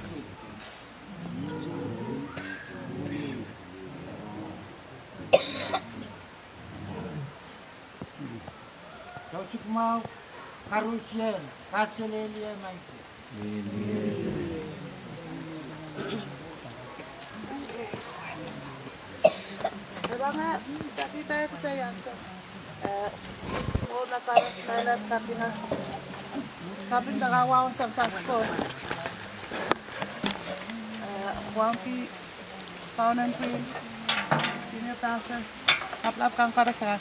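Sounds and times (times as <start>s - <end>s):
faint voices: 0.0s - 37.0s
person coughing: 5.3s - 5.9s
metal folding chair clacking: 34.1s - 34.7s
woman talking: 34.7s - 37.0s.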